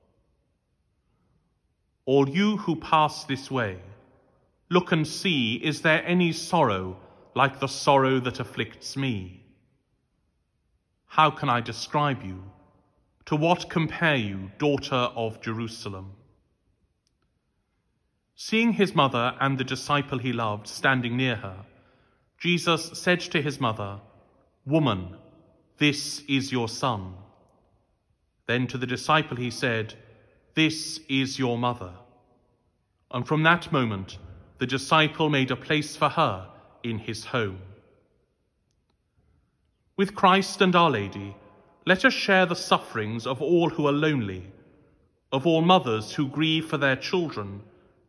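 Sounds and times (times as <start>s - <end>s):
man reading aloud: 2.0s - 4.0s, 4.6s - 9.6s, 11.0s - 16.3s, 18.3s - 27.4s, 28.4s - 32.2s, 33.0s - 37.8s, 39.9s - 44.6s, 45.2s - 47.8s.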